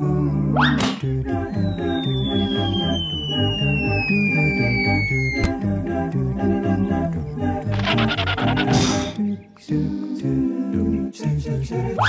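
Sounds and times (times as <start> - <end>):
cartoon background music: 0.0 - 12.0
high whistle-like tone sliding down: 1.4 - 5.5.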